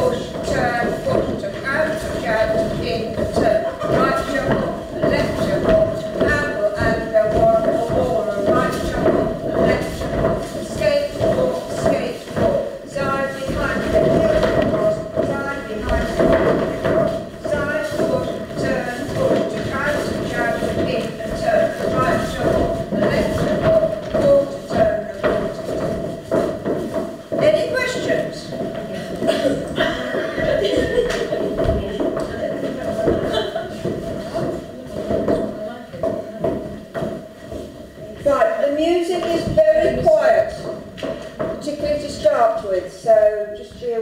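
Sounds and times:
person talking: 0:00.0 - 0:26.5, 0:27.3 - 0:36.8, 0:38.0 - 0:40.8
shoes stepping on wooden floor: 0:00.4 - 0:42.4.

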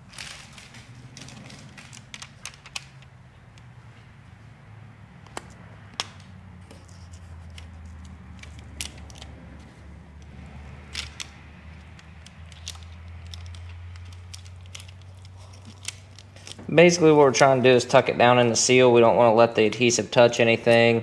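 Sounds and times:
plastic film crinkling and clicking: 0:00.0 - 0:03.7, 0:05.3 - 0:16.7.

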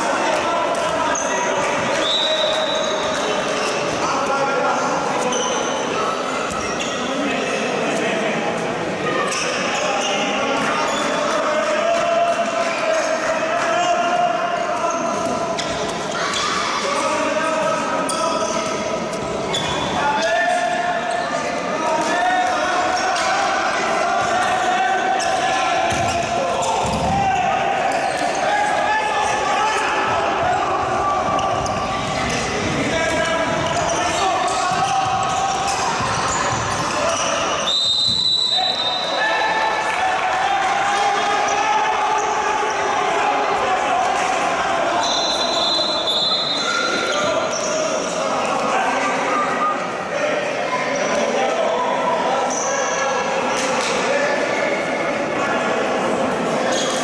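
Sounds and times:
referee's whistle: 0:01.9 - 0:03.3, 0:37.6 - 0:39.5, 0:45.0 - 0:47.7
players shouting: 0:19.6 - 0:50.4.

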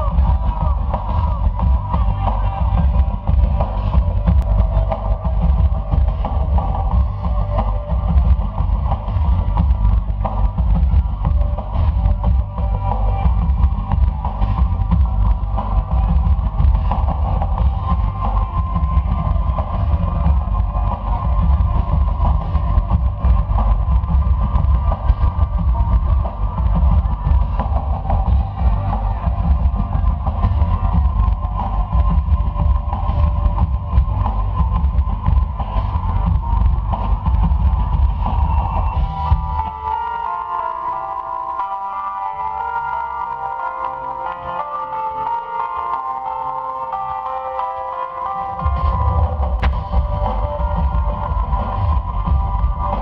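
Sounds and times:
drum kit with heavy bass drum: 0:00.0 - 0:39.7, 0:48.6 - 0:53.0.

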